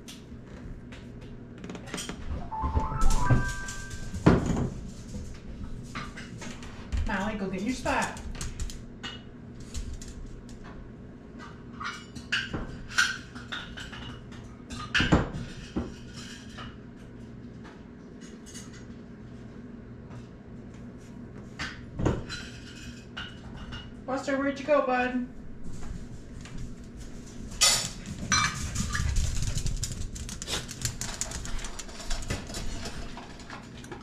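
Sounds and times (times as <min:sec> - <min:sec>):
dishes and utensils clinking: 0:02.5 - 0:04.4.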